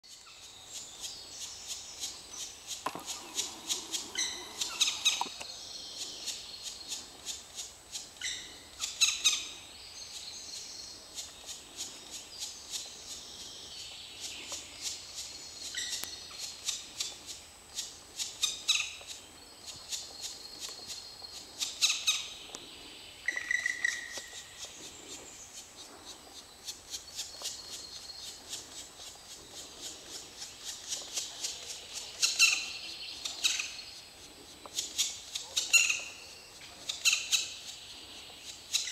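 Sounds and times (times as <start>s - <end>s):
nestlings high-pitched begging chatter: 3.0s - 5.4s.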